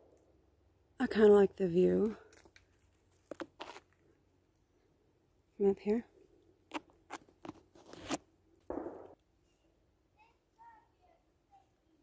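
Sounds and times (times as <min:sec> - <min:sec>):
twigs cracking and snapping: 0:02.3 - 0:04.0.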